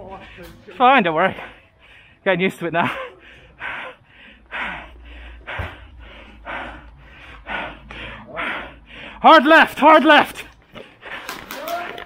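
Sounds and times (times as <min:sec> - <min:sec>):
person breathing hard: 0:01.3 - 0:02.3, 0:02.9 - 0:09.3, 0:10.6 - 0:11.5.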